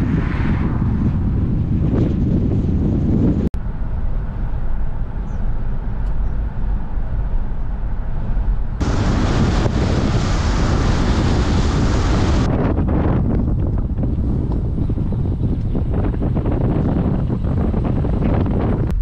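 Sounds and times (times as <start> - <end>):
low road rumble: 0.0 - 19.0
wind buffeting microphone: 0.0 - 19.0.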